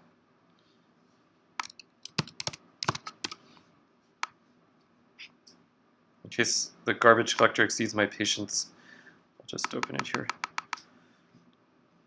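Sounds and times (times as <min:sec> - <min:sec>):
computer keyboard key taps: 0:01.6 - 0:03.4, 0:09.6 - 0:10.8.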